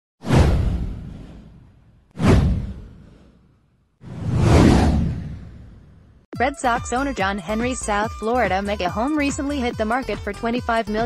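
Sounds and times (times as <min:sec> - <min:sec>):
swoosh rush: 0:00.2 - 0:03.4, 0:04.0 - 0:06.2
deep low boom: 0:00.3 - 0:03.1.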